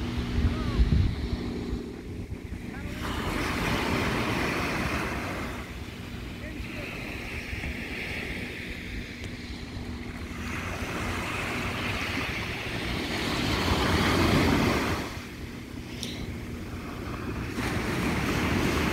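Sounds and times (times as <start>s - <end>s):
ocean waves breaking on shore: 0.0s - 18.9s
wind buffeting microphone: 0.0s - 18.9s.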